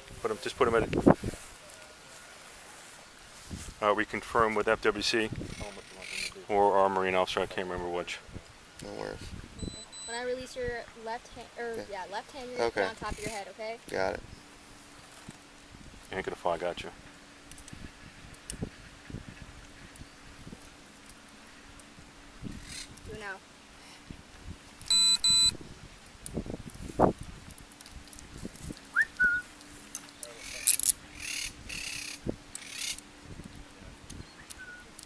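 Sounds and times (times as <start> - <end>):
short electronic beeps: 9.6 - 10.3, 24.9 - 25.6.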